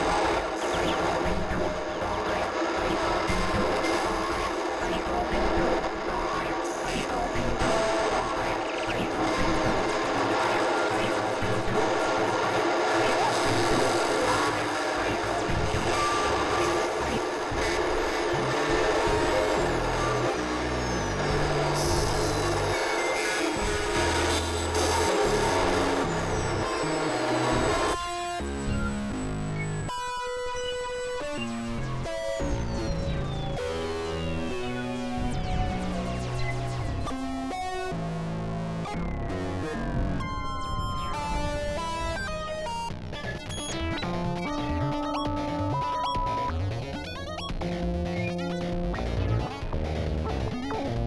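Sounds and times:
harsh synthesizer noise texture: 0:00.0 - 0:51.0.

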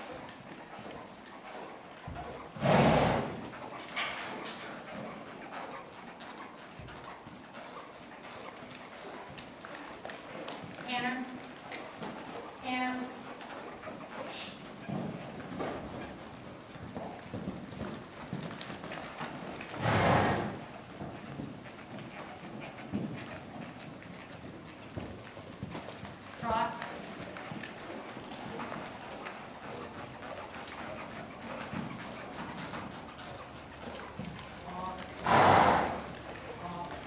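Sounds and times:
horse hoofbeats on dirt: 0:00.0 - 0:37.0.

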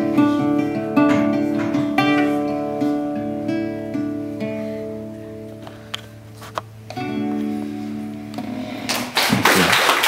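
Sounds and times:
audience applause: 0:08.8 - 0:10.0.

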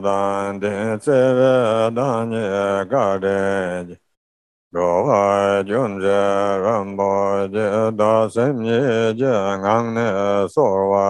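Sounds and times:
man chanting a prayer: 0:00.0 - 0:04.0, 0:04.8 - 0:11.0.

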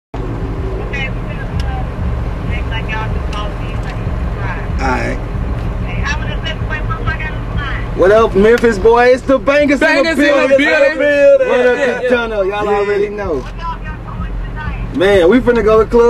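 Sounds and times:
vehicle interior rumble: 0:00.1 - 0:16.0
people talking indistinctly: 0:00.6 - 0:16.0.

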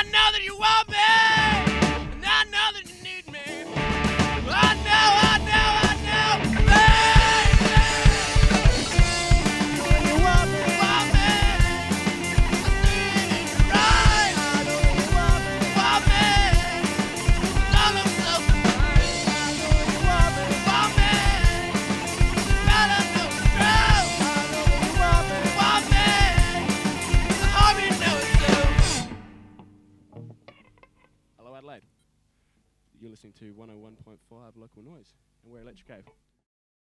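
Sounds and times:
bass guitar: 0:00.0 - 0:02.5, 0:03.5 - 0:31.1
man singing: 0:00.0 - 0:03.8, 0:04.4 - 0:29.1
drum kit: 0:00.0 - 0:29.7
electric guitar: 0:01.1 - 0:02.4, 0:03.3 - 0:31.2.

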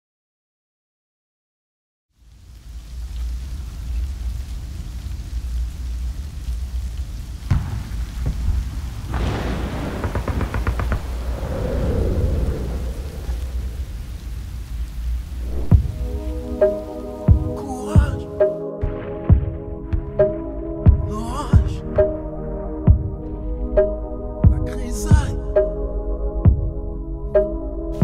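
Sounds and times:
steady rain: 0:02.1 - 0:20.2, 0:20.9 - 0:23.8, 0:24.4 - 0:25.5
thunder rumbling: 0:03.6 - 0:22.2
sharp thunder crack: 0:07.5 - 0:14.4, 0:15.4 - 0:16.6, 0:18.8 - 0:19.8
low thump: 0:15.6 - 0:16.0.

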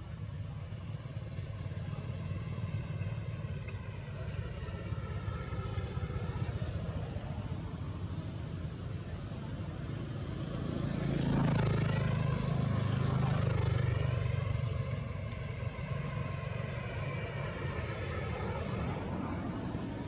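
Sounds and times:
vehicle engine passing by: 0:10.4 - 0:20.0.

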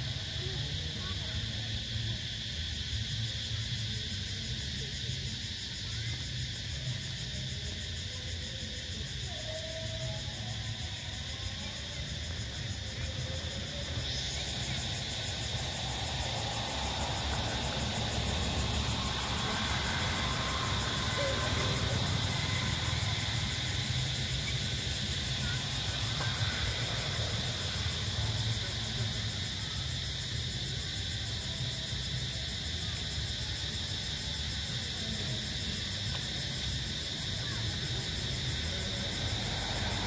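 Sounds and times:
high insect drone: 0:00.0 - 0:40.0.

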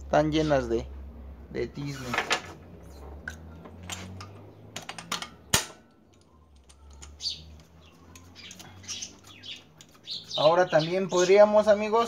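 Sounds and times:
sharp metal clink: 0:05.0 - 0:05.9.

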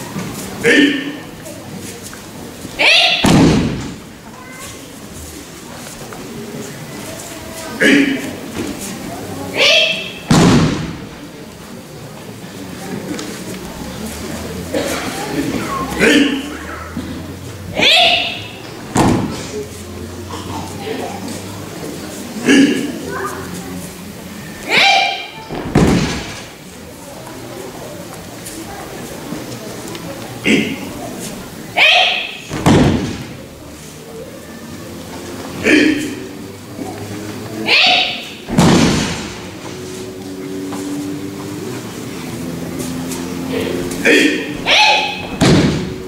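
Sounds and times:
person shouting: 0:02.8 - 0:03.2, 0:17.8 - 0:18.5, 0:24.7 - 0:25.3, 0:31.8 - 0:32.4, 0:37.6 - 0:38.4, 0:43.6 - 0:45.3
body thudding on mats: 0:32.6 - 0:33.3, 0:38.5 - 0:39.4, 0:45.2 - 0:46.0.

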